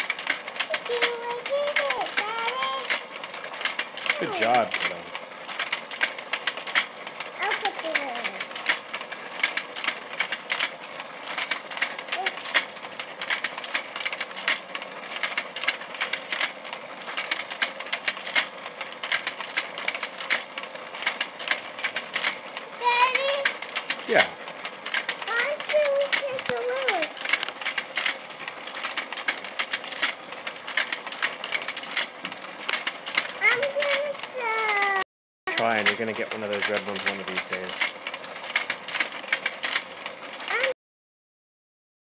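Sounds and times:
toy game clicking rattle: 0.0s - 40.8s
child's voice: 0.6s - 3.0s, 4.1s - 4.7s, 7.4s - 8.5s, 12.1s - 12.6s, 22.8s - 23.6s, 25.3s - 27.2s, 33.4s - 35.8s, 40.5s - 40.8s.

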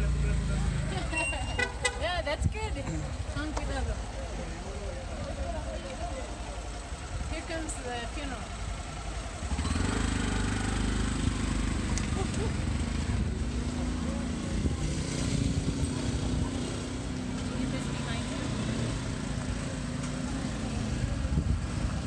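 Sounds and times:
motorcycle engine pulling away: 8.4s - 22.0s.

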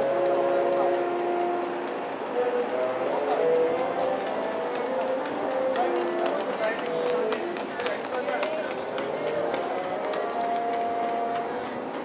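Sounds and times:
voices calling out: 2.2s - 12.0s
sprinters' footfalls on track: 3.2s - 12.0s.

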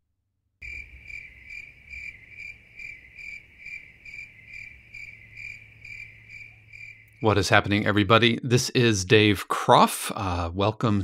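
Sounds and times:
crickets chirping: 0.6s - 7.5s.

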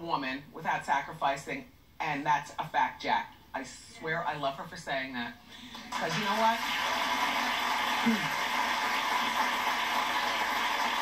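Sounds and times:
audience applauding: 5.7s - 11.0s.

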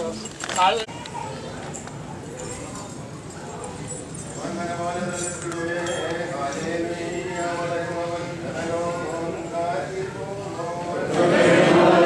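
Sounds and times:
men chanting a hymn: 6.6s - 12.0s.

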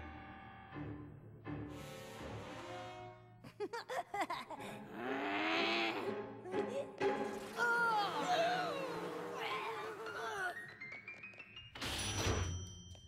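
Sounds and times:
cartoon background music: 4.6s - 12.6s
character yelping and crying: 7.4s - 10.6s.

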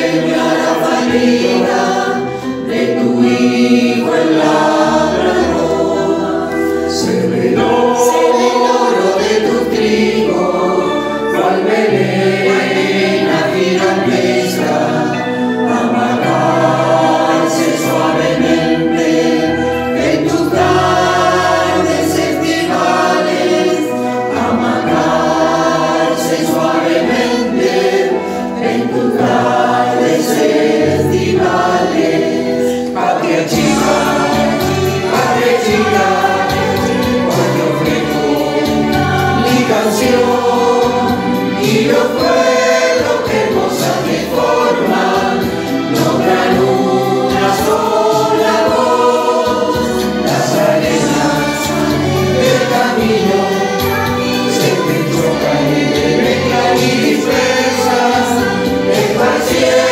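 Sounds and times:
choir singing a hymn: 0.0s - 59.9s.

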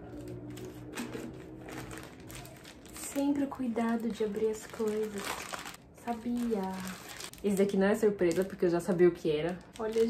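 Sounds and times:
mail packet crinkling: 0.1s - 10.0s.

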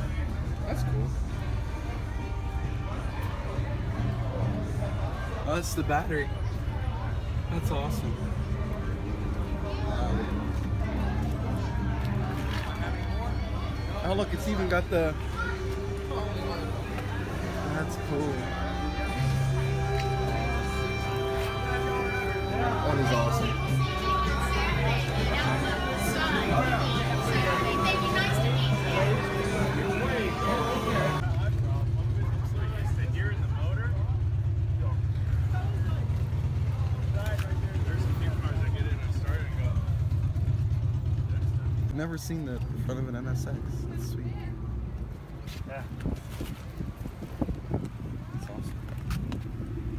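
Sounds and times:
people talking: 0.0s - 40.2s, 41.0s - 44.6s, 48.1s - 49.2s
car engine idling: 0.0s - 45.9s, 46.6s - 49.9s.

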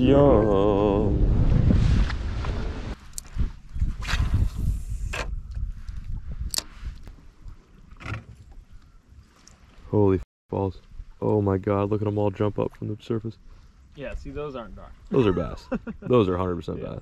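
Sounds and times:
wind on microphone: 0.0s - 7.6s
water lapping against boat hull: 2.5s - 10.0s.

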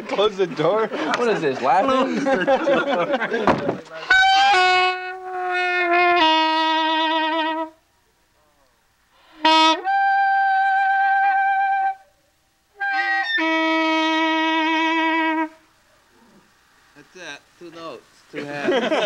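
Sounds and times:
saxophone long notes with vibrato: 4.0s - 7.8s, 9.2s - 15.7s.

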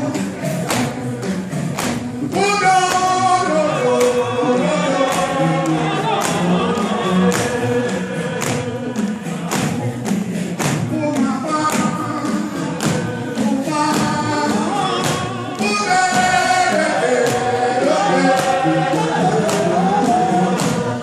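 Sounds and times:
group gospel singing: 0.0s - 21.0s
steady percussive beat: 0.0s - 21.0s.

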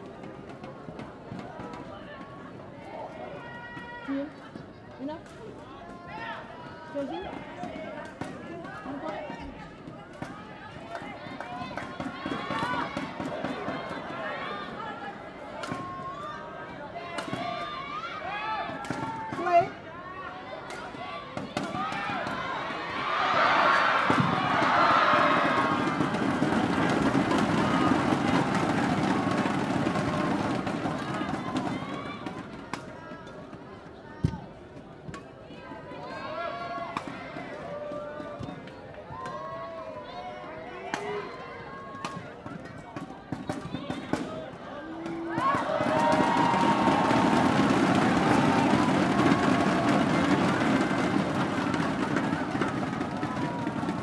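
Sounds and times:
crowd chatter: 0.0s - 54.0s
crowd cheering and shouting: 10.2s - 33.2s, 35.6s - 42.3s, 43.8s - 54.0s.

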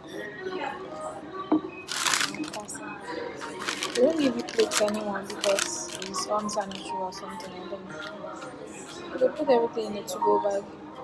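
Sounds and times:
paper bag crinkling: 1.9s - 2.8s, 3.4s - 6.9s.

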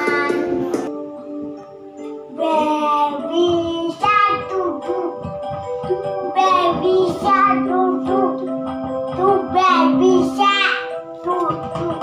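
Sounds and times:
boy singing: 0.0s - 0.7s, 2.3s - 5.3s, 6.3s - 8.5s, 9.1s - 12.0s
instrumental accompaniment: 0.0s - 12.0s.

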